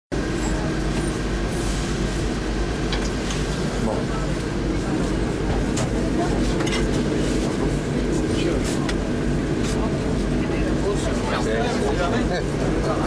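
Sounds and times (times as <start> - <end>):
bus engine rumble inside cabin: 0.1 - 13.0.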